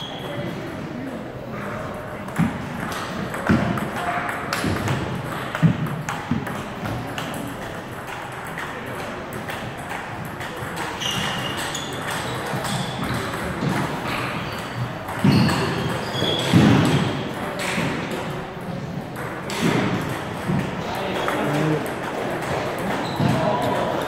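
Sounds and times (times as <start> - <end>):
table tennis ball hitting paddles: 2.0 - 24.0.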